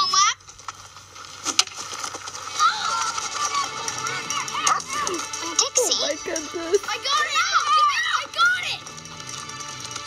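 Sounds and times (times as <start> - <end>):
boys shouting: 2.5 - 8.8.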